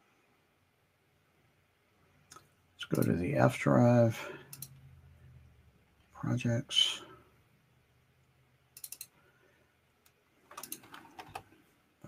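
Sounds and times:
computer mouse clicks: 0:04.5 - 0:04.8, 0:08.8 - 0:09.2, 0:10.0 - 0:11.5.

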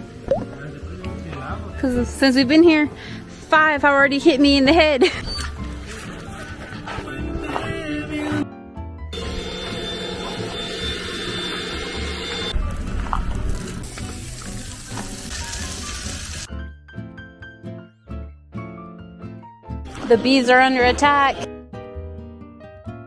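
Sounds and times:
background music: 0:00.0 - 0:23.0.

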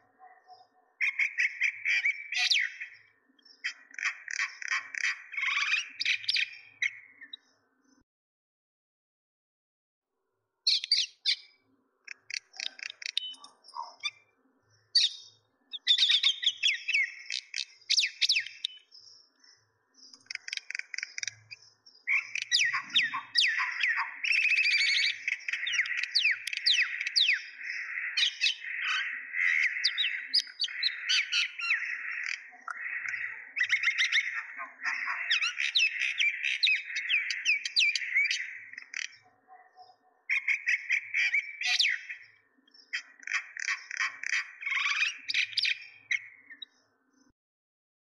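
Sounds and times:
birds chirping: 0:00.0 - 0:08.0, 0:10.6 - 0:47.3.

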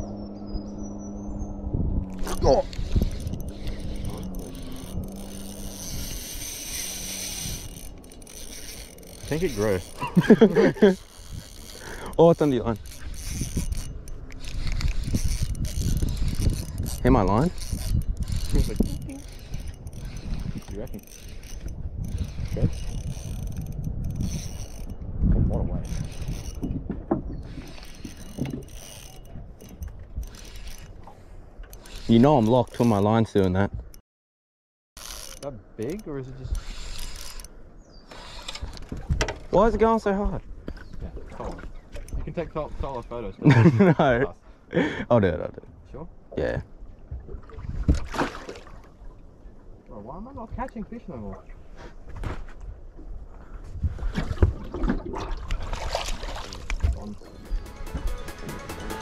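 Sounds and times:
fishing reel gears whirring: 0:00.1 - 0:26.7, 0:27.4 - 0:33.2, 0:35.0 - 0:39.8.

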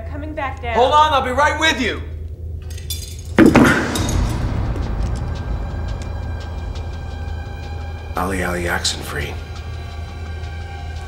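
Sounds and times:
dark musical drone: 0:01.1 - 0:11.0
low hum: 0:02.0 - 0:11.0
loud crash: 0:03.2 - 0:06.9.

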